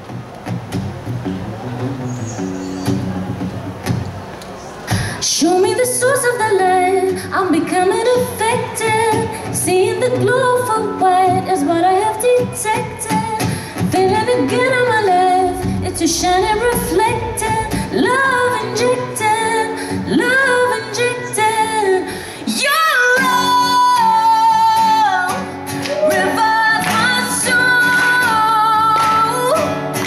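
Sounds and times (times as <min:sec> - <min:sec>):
acoustic guitar accompaniment: 0:00.0 - 0:30.0
woman singing into microphone: 0:04.9 - 0:29.8.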